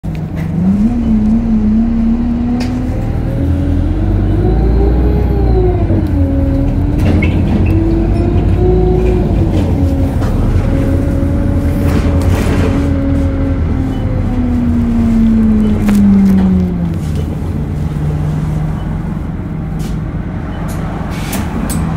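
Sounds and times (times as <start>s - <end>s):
bus diesel engine: 0.0s - 21.9s.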